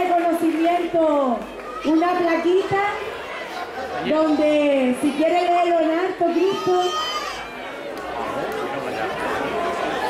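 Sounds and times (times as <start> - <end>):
chatter of many voices: 1.4 - 10.0.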